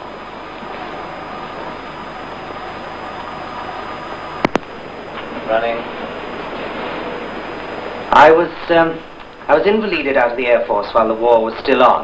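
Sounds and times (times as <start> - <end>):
film recording hiss: 0.0 - 12.0.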